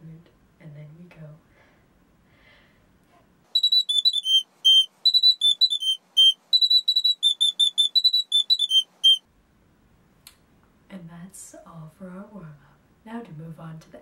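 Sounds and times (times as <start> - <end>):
recorder playing high-pitched tune: 3.6 - 9.2.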